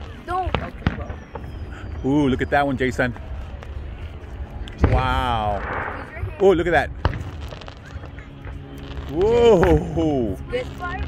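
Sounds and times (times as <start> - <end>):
low rumble: 0.0 - 11.0
distant firework shell bursting: 0.5 - 1.6, 7.0 - 9.9.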